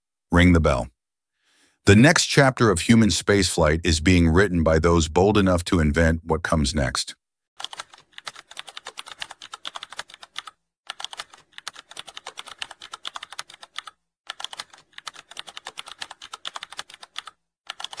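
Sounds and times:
computer keyboard typing: 7.6s - 18.0s.

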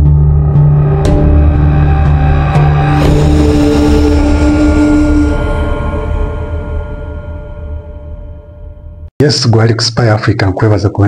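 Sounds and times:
intro theme music: 0.0s - 9.1s.

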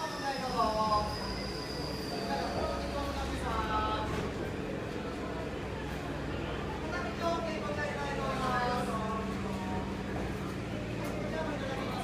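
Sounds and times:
train wheels and motors rumbling: 0.0s - 12.0s.

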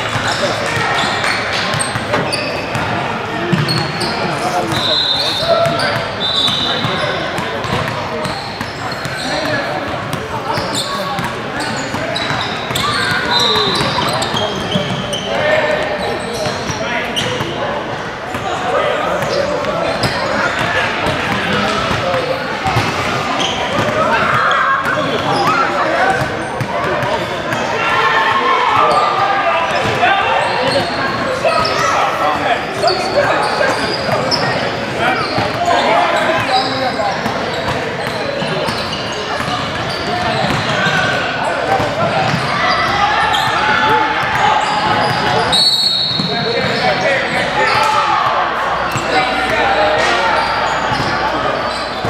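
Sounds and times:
players chattering: 0.0s - 52.0s.

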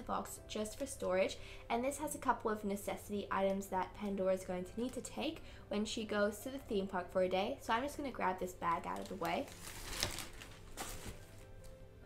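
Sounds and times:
quiet background music: 0.0s - 12.0s
plastic zip bag rustling: 8.6s - 11.8s.

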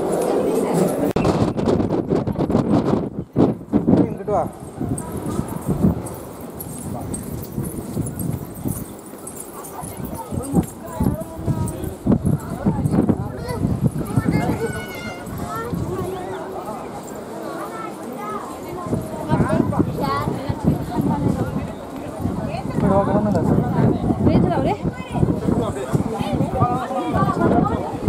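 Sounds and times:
people talking and calling: 0.0s - 28.0s.

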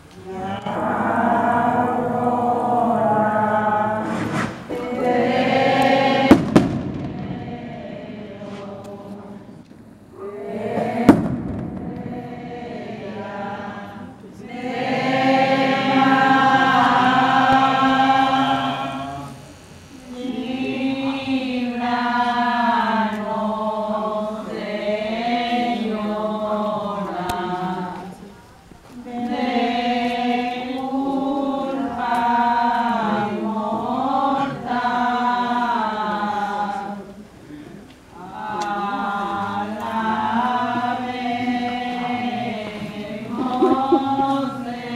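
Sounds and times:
group singing a hymn: 0.0s - 44.9s
sharp bang: 6.2s - 7.6s, 10.8s - 12.4s.

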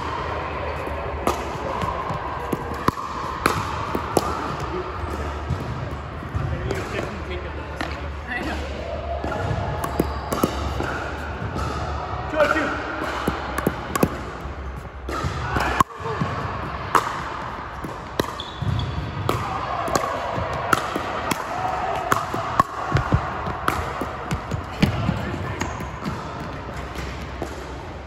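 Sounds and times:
paddles striking plastic ball: 16.9s - 27.6s
ball bouncing on wooden floor: 17.8s - 27.6s.

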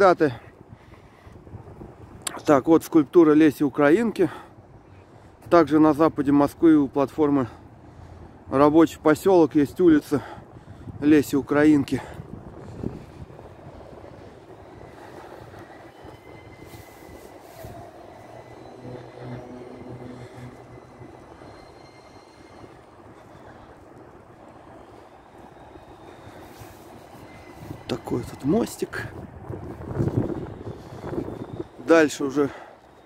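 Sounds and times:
city traffic hum: 0.0s - 33.0s
faint engine drone: 12.3s - 27.8s.

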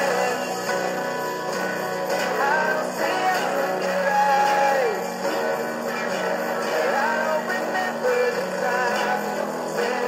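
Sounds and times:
drums: 0.0s - 10.0s
electric guitar lead line: 0.0s - 10.0s
keyboard: 0.0s - 10.0s.

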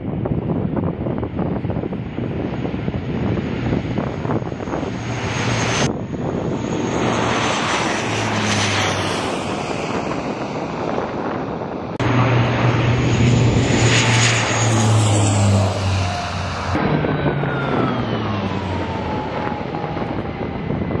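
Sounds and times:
low engine hum: 0.0s - 21.0s
turboprop propeller drone: 0.0s - 21.0s.

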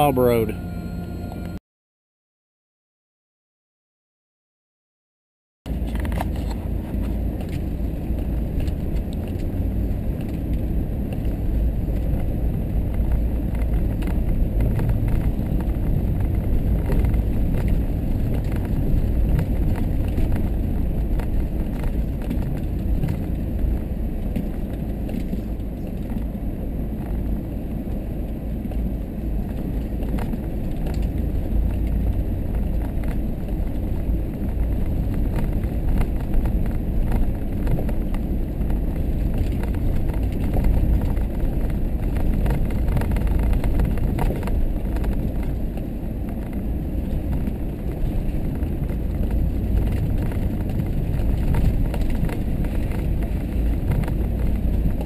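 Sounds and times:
engine and tyres rumbling: 0.0s - 1.6s, 5.7s - 55.0s.

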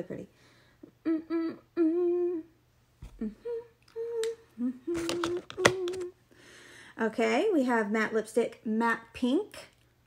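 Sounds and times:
woman humming: 0.8s - 6.2s.

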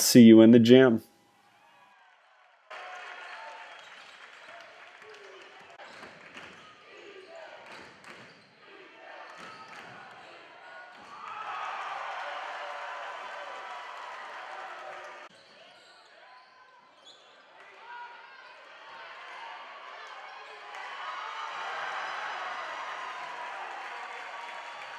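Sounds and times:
voices of players and spectators: 2.7s - 24.9s.

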